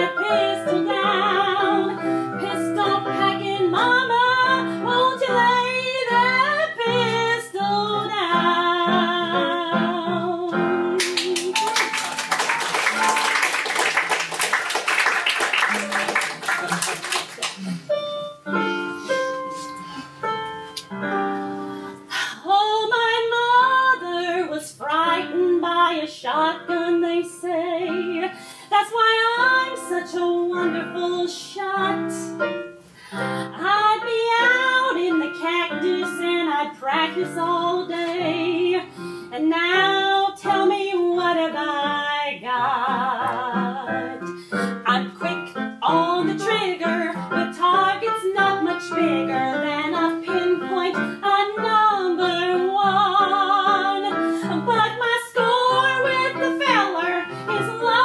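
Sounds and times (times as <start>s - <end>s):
woman singing with vibrato: 0.0s - 11.6s, 22.1s - 32.4s, 33.5s - 58.0s
instrumental accompaniment: 7.6s - 22.3s.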